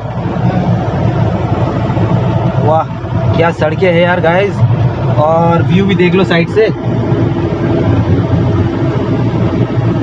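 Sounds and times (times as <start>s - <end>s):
car engine and tyre drone: 0.0s - 10.0s.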